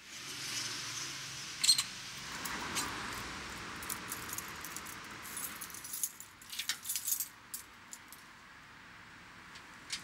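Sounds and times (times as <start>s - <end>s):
keys jangling and clinking: 3.8s - 8.2s.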